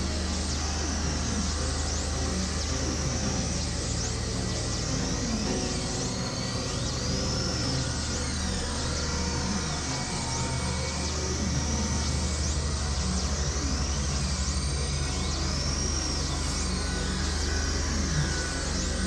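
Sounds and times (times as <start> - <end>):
low electronic drone: 0.0 - 19.0.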